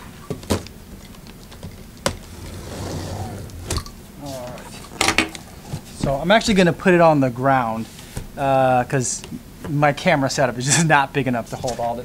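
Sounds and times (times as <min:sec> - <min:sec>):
cardboard scraping and rustling: 0:02.1 - 0:06.2.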